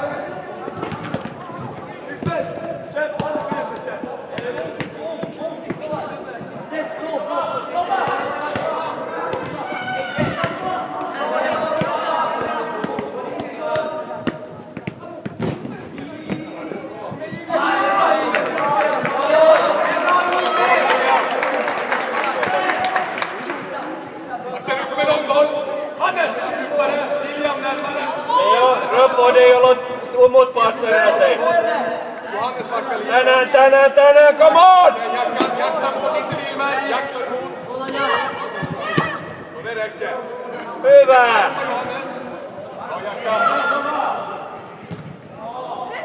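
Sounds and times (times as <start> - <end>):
players shouting: 2.0 - 14.5, 16.2 - 23.6, 33.4 - 44.5
football being kicked: 3.2 - 3.7, 44.9 - 45.2.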